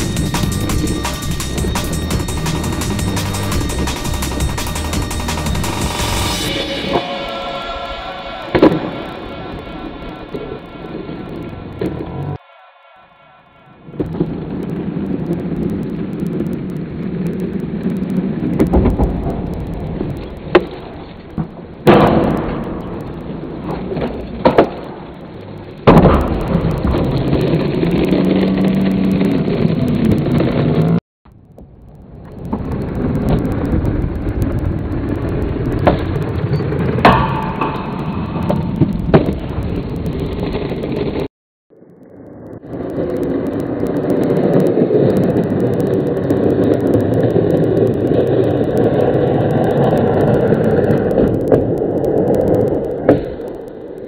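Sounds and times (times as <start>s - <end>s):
skateboard wheels rolling on concrete: 13.9s - 41.3s, 42.1s - 54.0s.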